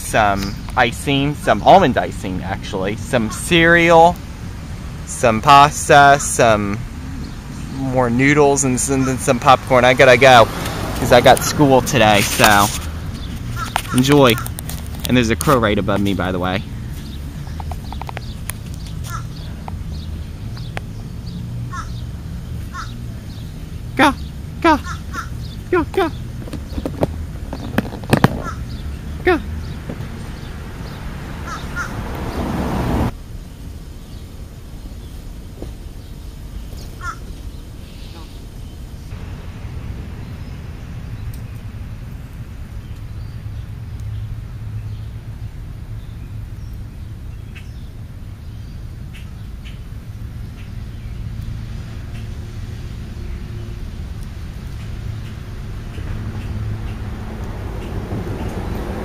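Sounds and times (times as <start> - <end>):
steady low rumble: 0.0 - 59.0
crows cawing: 19.0 - 19.5, 21.7 - 22.0, 22.7 - 23.0, 24.8 - 25.5, 28.4 - 28.8, 31.4 - 32.0, 37.0 - 37.3
rushing noise: 21.5 - 36.2, 39.1 - 42.6.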